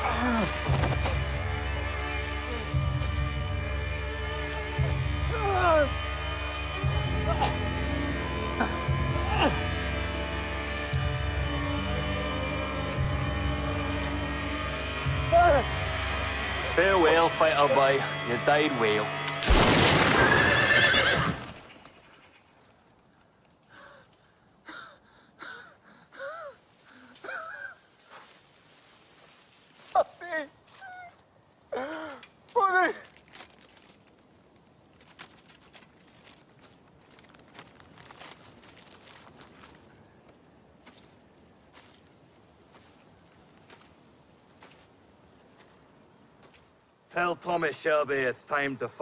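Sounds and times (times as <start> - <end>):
footsteps on woodland ground: 0.0 - 14.2, 26.6 - 31.3, 32.4 - 47.4
horse whinnying: 20.2 - 21.8.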